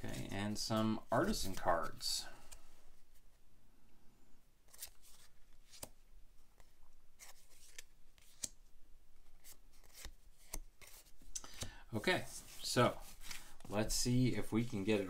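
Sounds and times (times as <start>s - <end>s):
cards clicking and rubbing: 6.6s - 8.6s, 9.2s - 11.7s, 12.5s - 13.7s.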